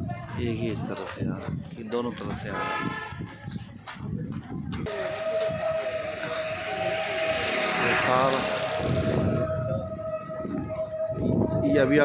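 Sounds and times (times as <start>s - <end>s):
vehicle passing: 4.9s - 10.1s
steady horn blast: 4.9s - 10.4s.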